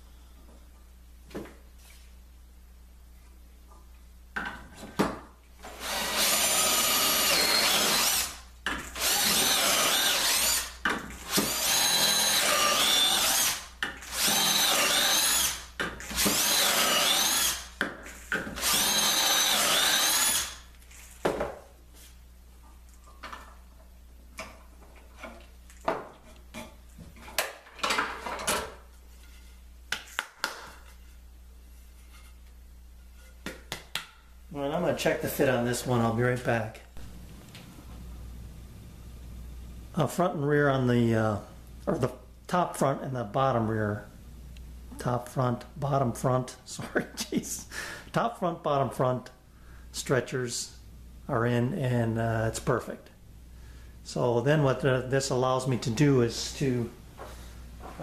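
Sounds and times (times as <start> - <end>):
cordless drill boring holes: 5.6 - 8.4, 9.0 - 17.8, 18.6 - 20.6.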